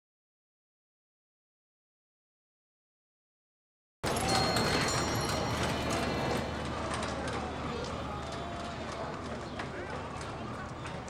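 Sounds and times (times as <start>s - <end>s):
crowd chatter: 4.0s - 11.0s.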